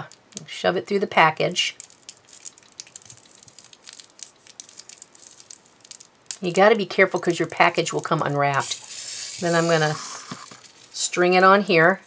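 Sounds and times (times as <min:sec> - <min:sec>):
cellophane crinkling: 0:01.6 - 0:11.6.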